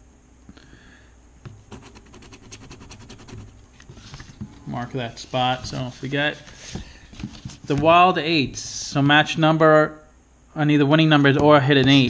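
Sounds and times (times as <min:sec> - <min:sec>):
scratching lottery ticket: 0:01.7 - 0:04.4.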